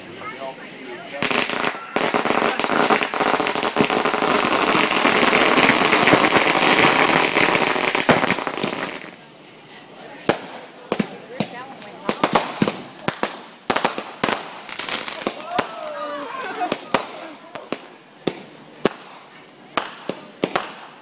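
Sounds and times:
fireworks crackling and popping: 0.0s - 21.0s
sharp firework pops: 1.2s - 9.2s, 10.2s - 21.0s.

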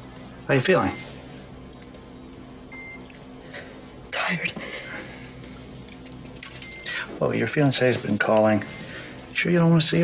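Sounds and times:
patient monitor beep: 0.0s - 1.2s, 2.1s - 3.2s, 6.4s - 7.1s.

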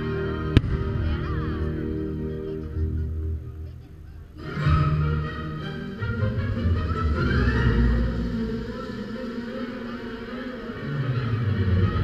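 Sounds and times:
faint music: 0.0s - 12.0s
fireworks bursts rumbling: 0.6s - 2.1s.

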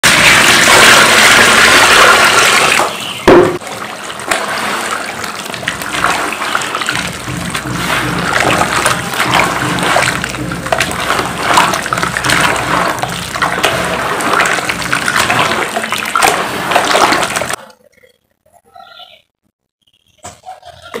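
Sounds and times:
water pouring onto cement powder: 0.0s - 17.6s
sharp thump: 3.3s - 3.6s
hands squelching wet cement: 4.2s - 17.6s.

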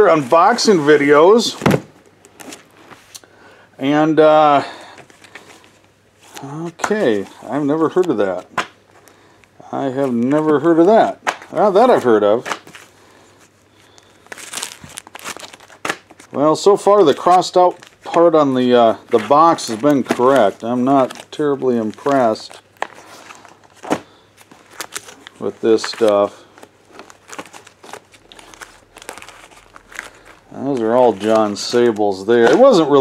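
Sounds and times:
plastic bags crinkling: 4.4s - 33.0s.

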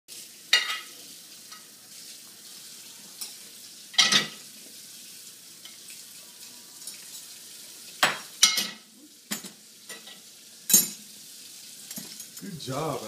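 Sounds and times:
dishes clattering: 0.5s - 0.9s, 3.2s - 4.4s, 8.0s - 11.0s, 11.9s - 12.4s.

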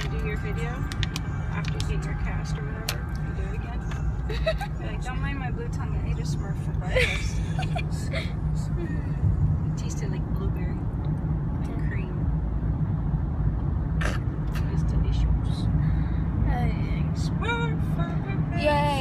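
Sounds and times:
car interior road rumble: 0.0s - 19.0s.

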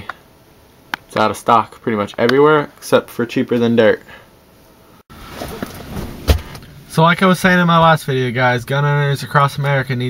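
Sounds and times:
rustling: 5.1s - 6.8s
sharp thump: 5.4s - 6.7s.

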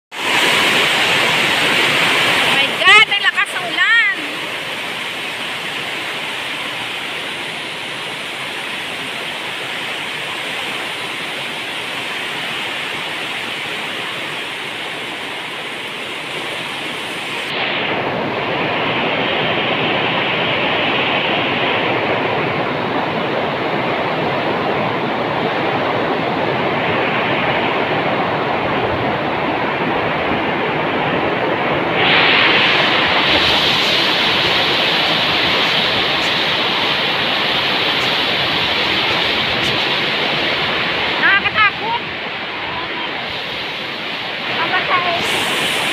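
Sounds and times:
heavy rain downpour: 0.1s - 45.9s.

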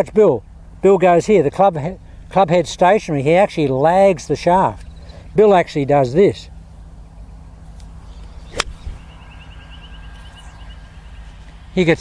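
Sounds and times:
golf club striking ball: 7.8s - 9.0s.

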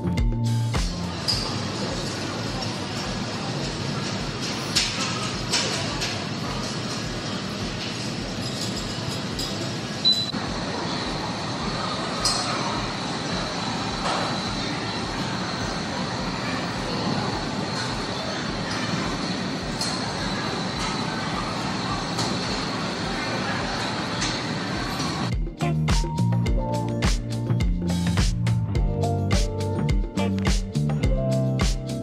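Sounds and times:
gym background noise: 0.0s - 32.0s.

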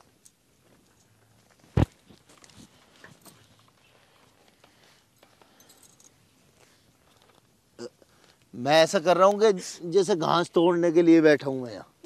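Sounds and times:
soft clicks and rustles: 0.0s - 8.6s.

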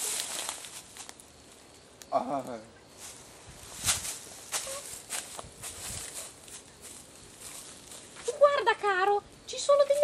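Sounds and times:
footsteps rustling through grass: 0.0s - 1.8s, 2.9s - 8.7s.

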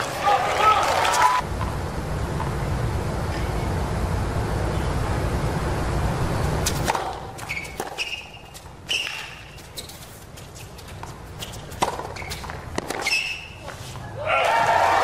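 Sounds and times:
loud racket crack: 6.6s - 9.6s, 11.4s - 13.6s
tennis ball bouncing and struck: 6.6s - 9.6s, 10.9s - 13.5s
shoe squeaks: 7.4s - 14.2s.

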